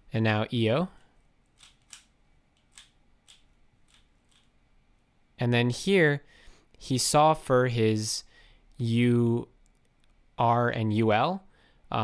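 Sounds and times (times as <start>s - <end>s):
plastic puzzle cube clicks: 1.6s - 4.5s.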